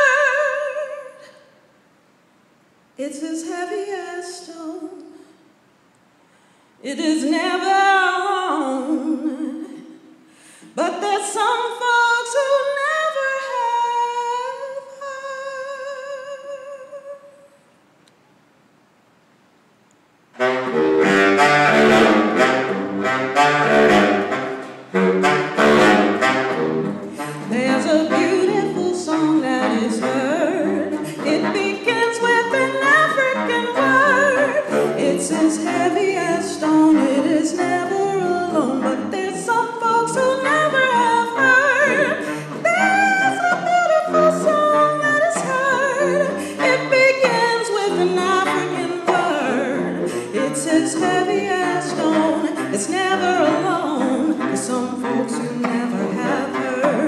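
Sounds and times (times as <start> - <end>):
woman singing a cappella: 0.0 - 1.5, 3.0 - 5.3, 6.8 - 10.0, 10.7 - 17.6, 27.4 - 57.0
baritone saxophone playing: 20.4 - 57.0.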